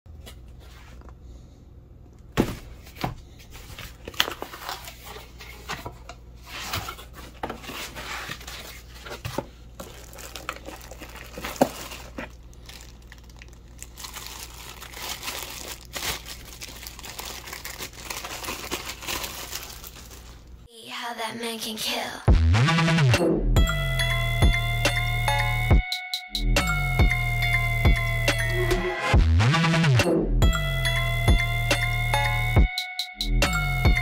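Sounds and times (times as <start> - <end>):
cardboard and foam handling: 2.4 - 12.9
plastic bag crinkling: 3.9 - 5.7, 7.7 - 20.7.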